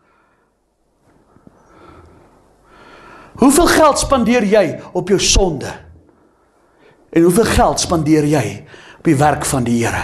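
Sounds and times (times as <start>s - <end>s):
faint breathing into microphone: 0.0s - 3.4s, 6.1s - 7.1s, 8.7s - 9.0s.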